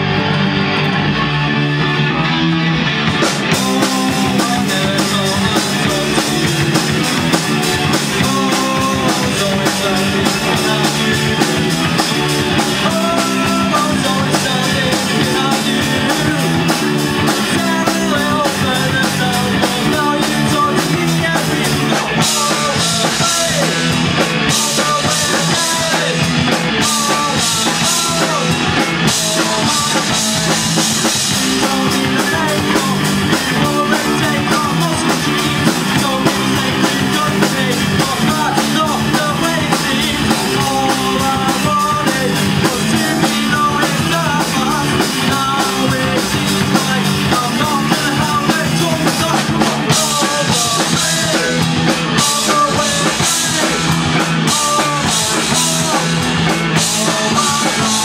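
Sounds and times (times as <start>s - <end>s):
drum kit: 0.0s - 58.0s
electric guitars: 0.0s - 58.0s.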